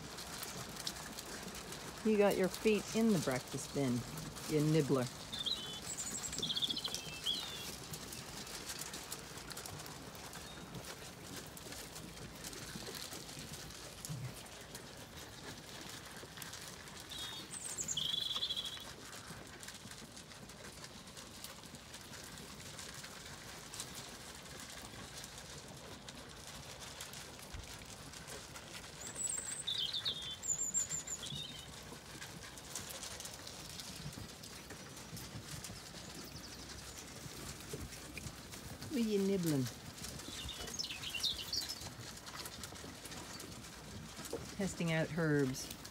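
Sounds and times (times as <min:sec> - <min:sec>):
sheep rustling and ticking: 0:00.0 - 0:45.9
small birds chirping: 0:02.1 - 0:08.9, 0:10.2 - 0:10.9, 0:17.0 - 0:19.0, 0:28.9 - 0:31.9, 0:33.4 - 0:43.6.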